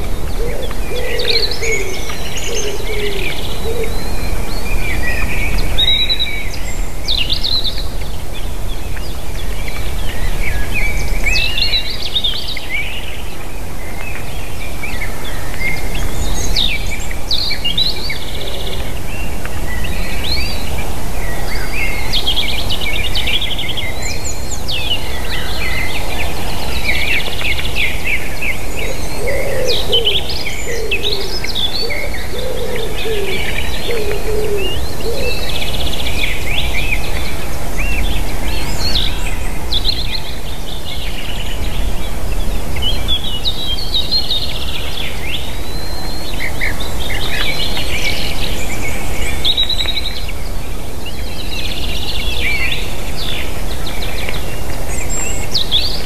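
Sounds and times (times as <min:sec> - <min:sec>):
songbirds chirping and singing: 0:00.0 - 0:56.0
cooing or hooting bird call: 0:00.3 - 0:04.2, 0:18.3 - 0:19.0, 0:28.8 - 0:35.6.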